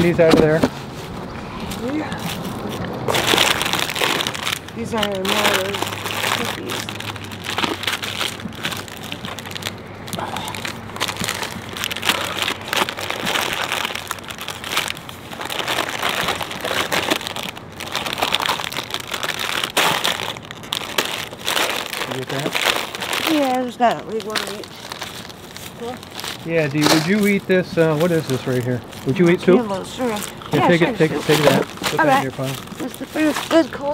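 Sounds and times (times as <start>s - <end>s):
plastic wrappers crinkling: 0.0s - 33.9s.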